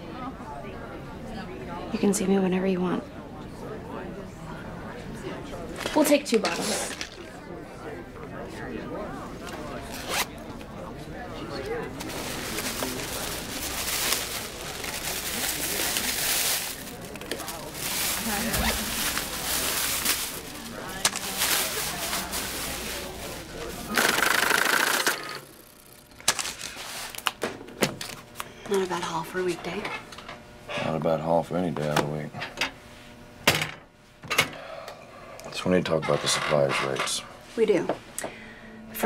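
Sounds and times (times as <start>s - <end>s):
murmur of voices: 0.0s - 26.1s
plastic bag rustling: 11.8s - 24.9s, 26.3s - 27.3s.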